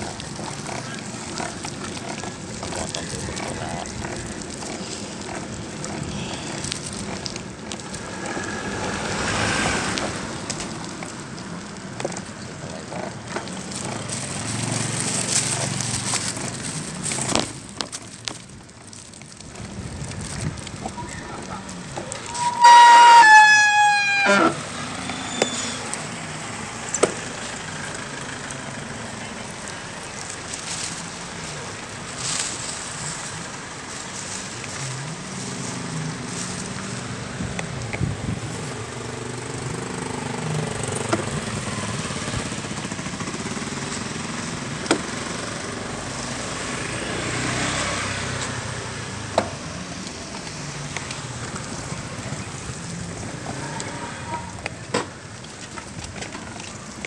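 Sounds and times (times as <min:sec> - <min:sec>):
vehicle passing: 0:00.0 - 0:17.6, 0:18.2 - 0:57.0
traffic murmur: 0:00.0 - 0:57.0.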